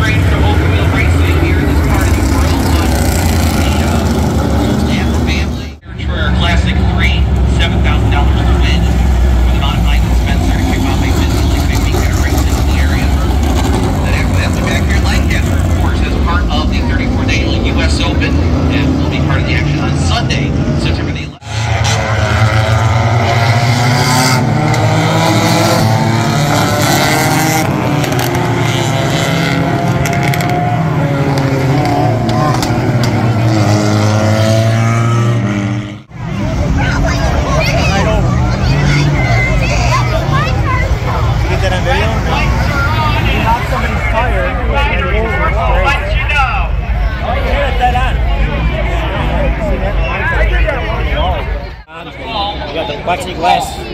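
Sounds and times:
race cars accelerating past: 0.0 - 46.3
deep rumble of race cars: 0.0 - 53.9.

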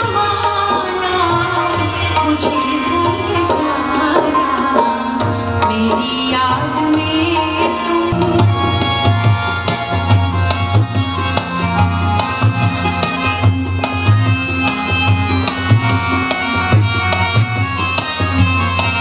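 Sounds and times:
harmonium sustained notes: 0.0 - 19.0
tabla playing quick rhythm: 0.0 - 19.0.

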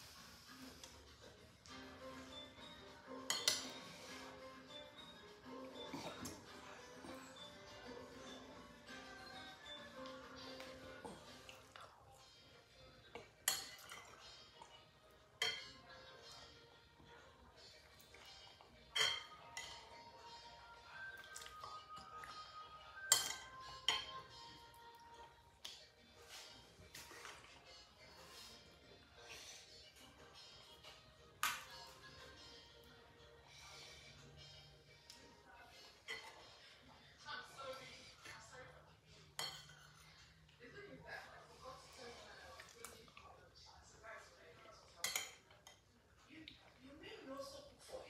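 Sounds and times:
metal fork clinking ceramic bowl: 3.2 - 3.8, 13.4 - 14.2, 15.4 - 15.9, 18.3 - 20.0, 23.0 - 24.4, 39.4 - 40.0, 45.0 - 45.8.

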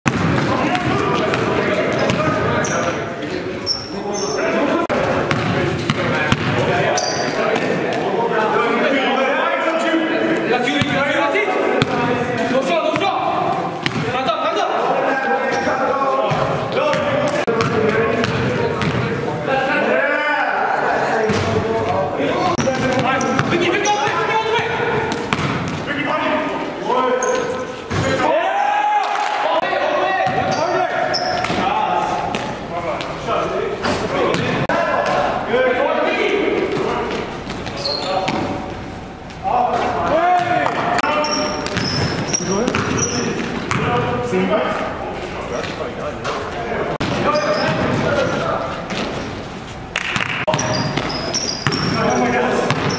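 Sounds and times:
basketball bouncing on wooden floor: 0.1 - 2.3, 5.3 - 6.6, 13.8 - 14.1, 25.1 - 25.8, 41.6 - 43.0, 50.1 - 52.0, 52.7 - 52.9
players shouting and talking: 0.1 - 52.9
short high squeaks: 37.8 - 38.3, 41.2 - 43.4, 50.6 - 52.2.

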